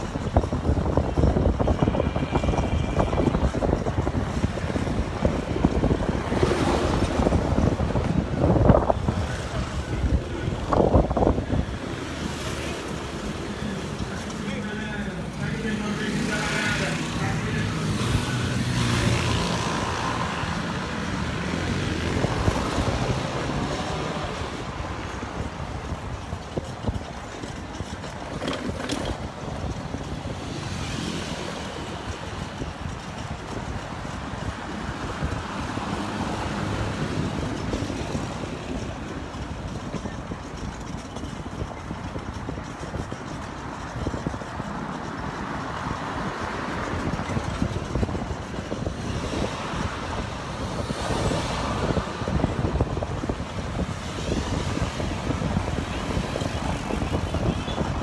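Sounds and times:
road and traffic noise: 0.0 - 58.0.

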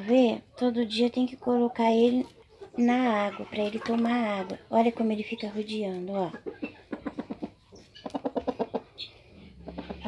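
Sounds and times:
rooster clucking: 1.0 - 5.6, 6.2 - 10.0.

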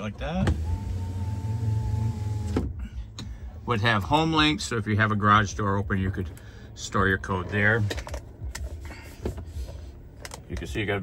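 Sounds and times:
electric window motor humming: 0.4 - 2.7.

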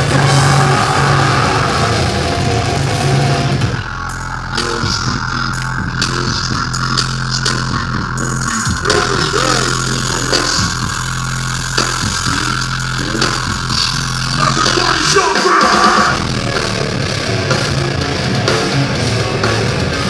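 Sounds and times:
distorted guitar drone: 0.0 - 20.0.

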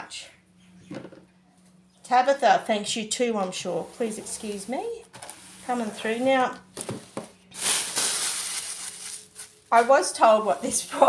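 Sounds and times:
tissue paper rustling: 7.5 - 11.0.

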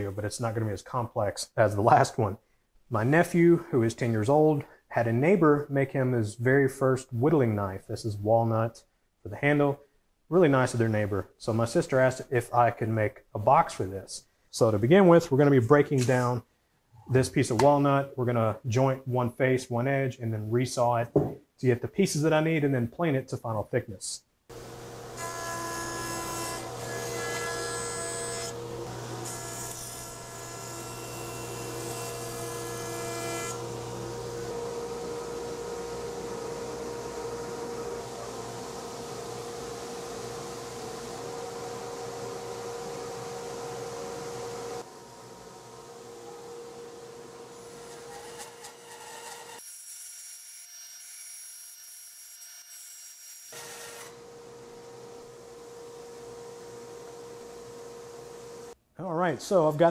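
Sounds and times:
bandsaw running: 24.5 - 41.6
jointer motor humming: 24.5 - 44.8.

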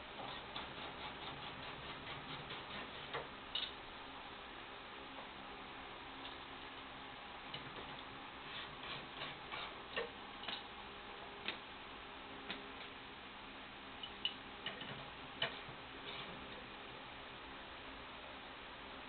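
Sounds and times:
steady background hiss: 0.0 - 19.0.

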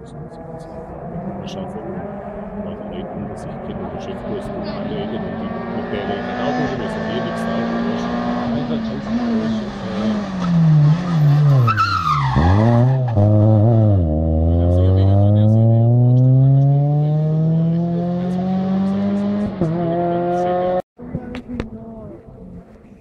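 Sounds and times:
rally car engine revving: 0.0 - 21.3.

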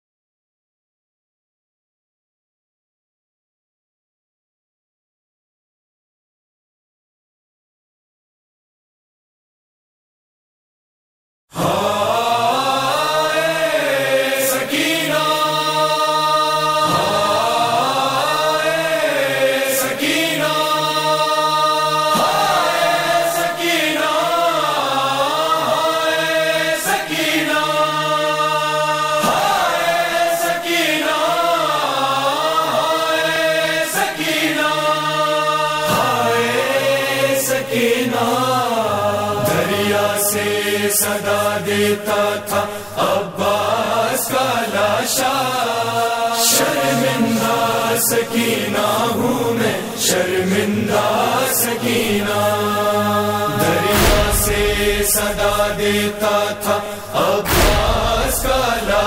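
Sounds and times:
voices chanting a lament: 11.5 - 59.0
low drone: 53.1 - 59.0
sharp beat: 53.5 - 56.6, 57.2 - 59.0.

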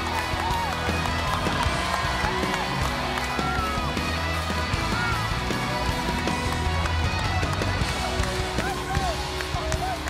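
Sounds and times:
music with heavy bass: 0.0 - 10.0.

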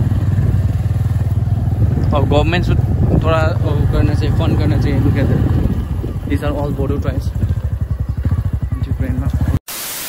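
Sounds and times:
motorcycle engine running: 0.0 - 9.6.

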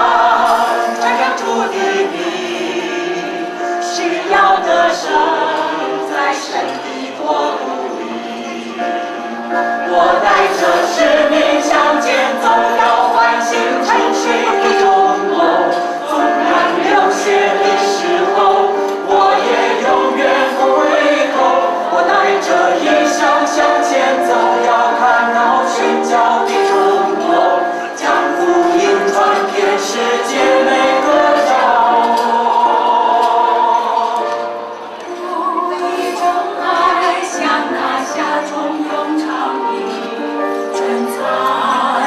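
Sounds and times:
mixed choir singing: 0.0 - 42.0.

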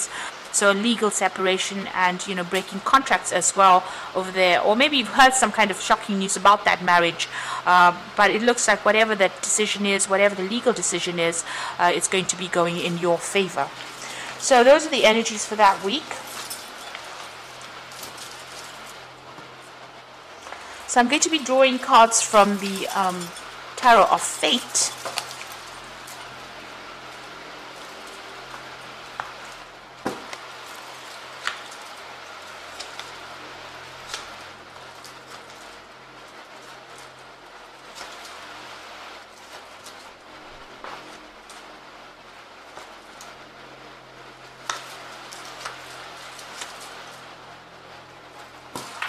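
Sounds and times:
steady background hiss: 0.0 - 49.0.

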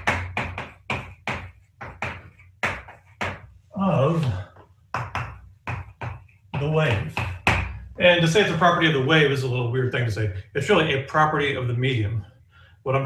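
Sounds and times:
chalk tapping and scraping: 0.0 - 7.9.

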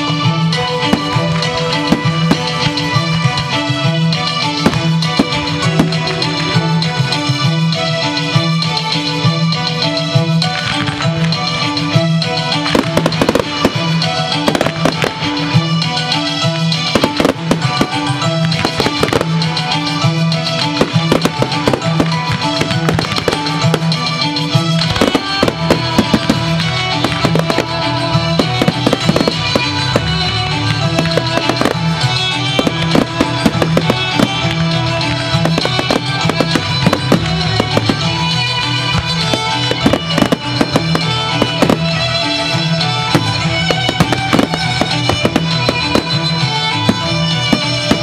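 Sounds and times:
fireworks bangs and crackles: 0.0 - 48.0
music soundtrack: 0.0 - 48.0.

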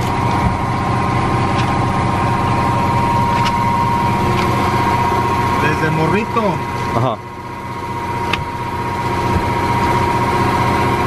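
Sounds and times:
vehicle engine idling: 0.0 - 11.0.

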